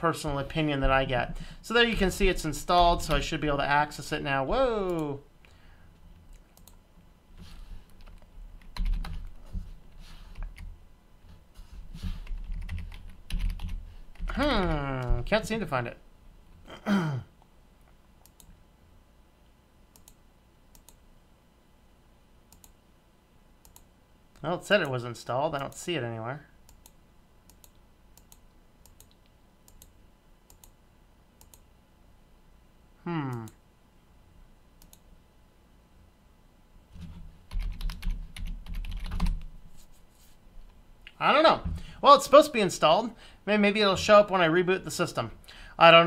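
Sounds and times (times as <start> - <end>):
computer mouse clicks: 6.2 - 6.8, 18.2 - 18.6, 19.9 - 21.0, 22.5 - 22.8, 23.6 - 23.9, 26.7 - 30.8, 31.4 - 31.7, 34.8 - 35.0
computer keyboard typing: 7.8 - 9.4, 12.2 - 15.2, 37.5 - 39.5.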